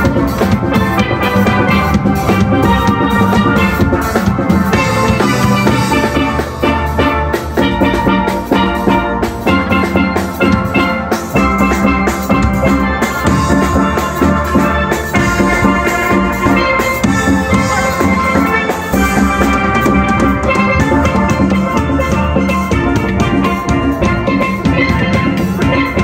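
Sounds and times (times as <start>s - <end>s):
steel band playing: 0.0s - 26.0s.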